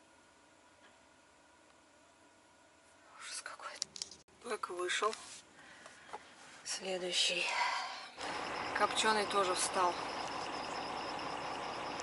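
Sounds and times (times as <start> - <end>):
faint steady hum: 0.0 - 12.0
loud breathy whisper: 7.3 - 8.2.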